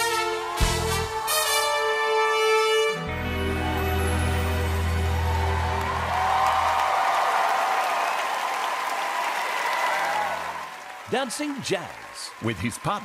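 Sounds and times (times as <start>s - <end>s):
music held chord: 0.5s - 6.1s
audience applauding and cheering: 3.1s - 13.0s.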